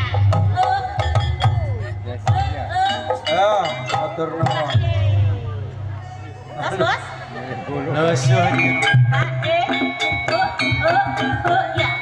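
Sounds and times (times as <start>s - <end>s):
pitched instrument tones: 0.0s - 12.0s.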